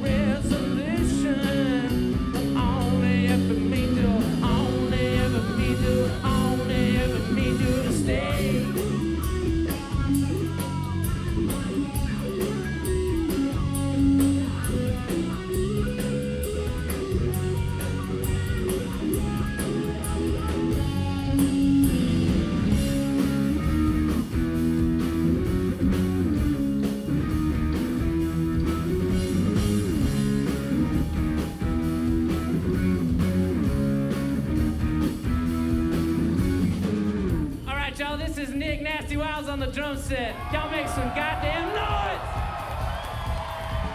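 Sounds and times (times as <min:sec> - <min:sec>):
electric guitar: 0:00.0 - 0:37.7
bass guitar: 0:00.0 - 0:43.9
drum kit: 0:00.0 - 0:43.9.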